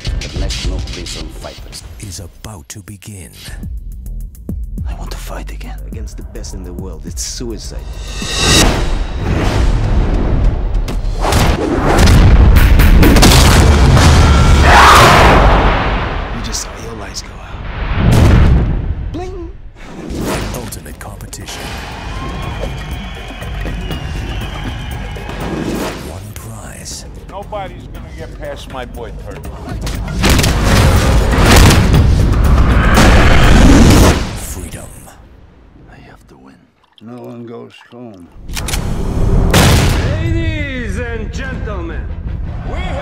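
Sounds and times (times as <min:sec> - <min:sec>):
trailer music: 0:03.2 - 0:19.1, 0:19.7 - 0:36.1, 0:38.4 - 0:43.0
deep booming hits: 0:07.8 - 0:16.5, 0:17.6 - 0:19.1, 0:30.1 - 0:34.5, 0:39.4 - 0:40.6.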